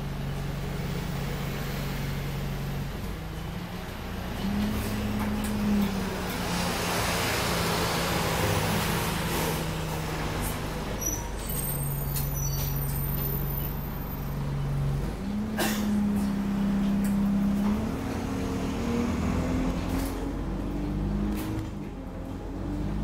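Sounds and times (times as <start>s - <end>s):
bus diesel engine running: 0.0s - 23.0s.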